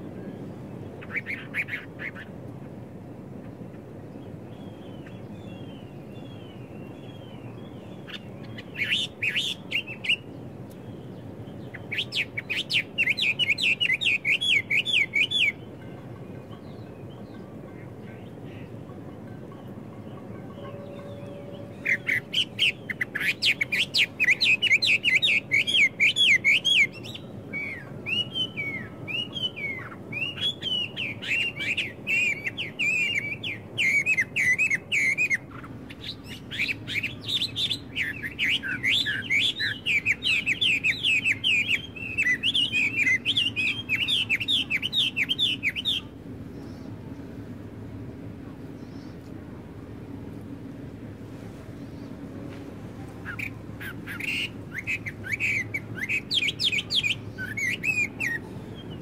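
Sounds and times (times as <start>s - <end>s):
songbirds chirping: 0.0s - 59.0s.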